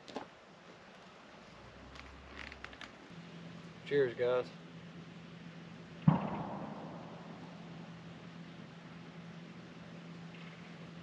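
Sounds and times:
faint low hum: 0:00.3 - 0:11.0
sharp knock: 0:06.0 - 0:07.4.

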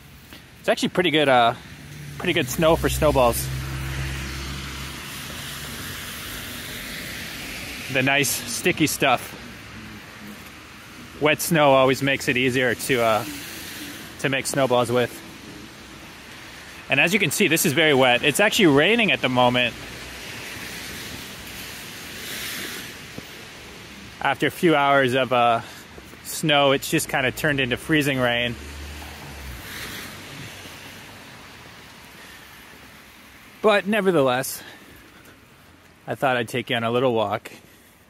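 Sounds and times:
wet street hiss: 0:00.0 - 0:38.0.

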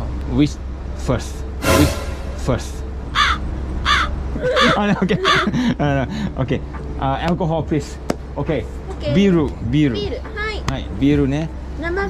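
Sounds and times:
crow cawing: 0:03.2 - 0:05.5.

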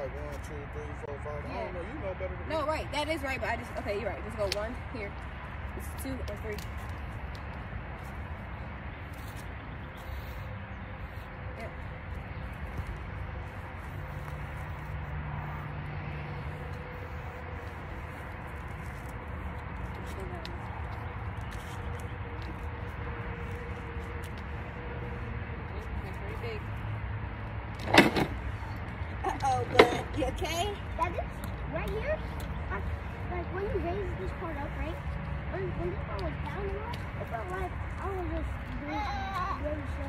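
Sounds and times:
low street rumble: 0:00.0 - 0:40.0.

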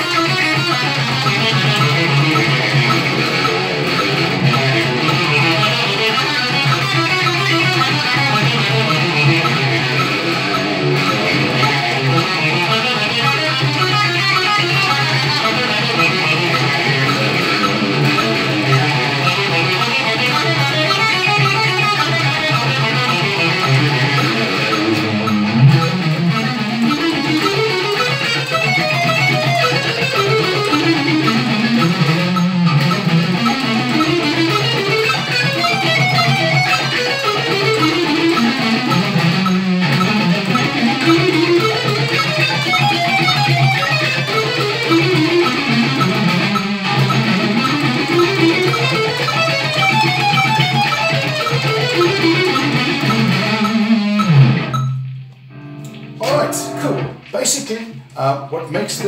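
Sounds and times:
electric guitar fast picking: 0:00.0 - 0:58.1.

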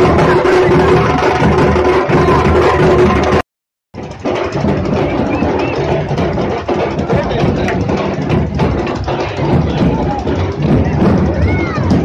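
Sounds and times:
drums beaten with sticks: 0:00.0 - 0:03.4, 0:04.0 - 0:12.0.

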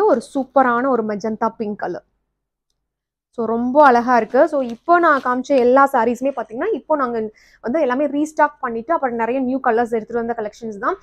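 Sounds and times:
woman speaking: 0:00.0 - 0:02.1, 0:03.4 - 0:11.0.

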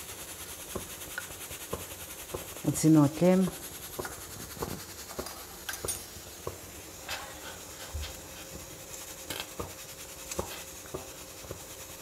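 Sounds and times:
broth simmering hiss: 0:00.0 - 0:12.0.

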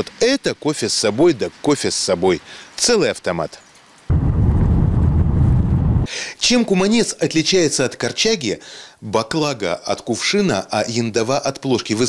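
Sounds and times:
wind buffeting microphone: 0:04.1 - 0:06.1.

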